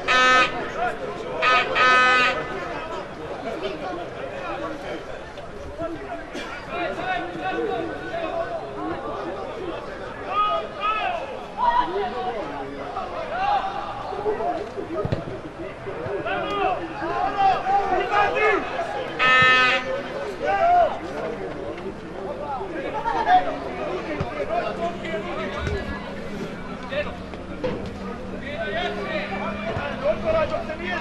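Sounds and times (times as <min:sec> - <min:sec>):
people shouting across a pitch: 0:13.1 - 0:14.4, 0:16.2 - 0:21.0
loud drawn-out shout: 0:16.2 - 0:21.0.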